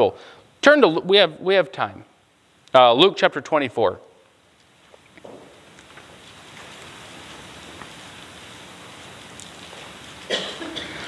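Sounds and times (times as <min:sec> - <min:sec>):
faint ticks: 0:09.2 - 0:09.7.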